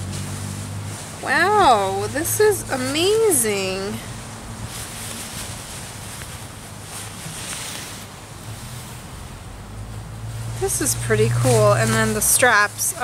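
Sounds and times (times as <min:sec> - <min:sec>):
nylon fabric rustling: 0:00.0 - 0:13.0
steady low background noise: 0:00.0 - 0:13.0.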